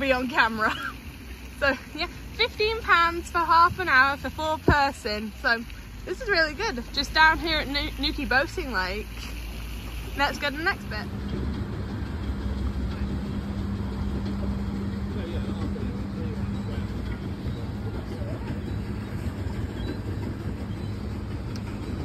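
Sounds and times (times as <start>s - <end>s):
low steady hum: 0.0s - 22.0s
water noise: 0.0s - 22.0s
faint voices: 10.1s - 22.0s.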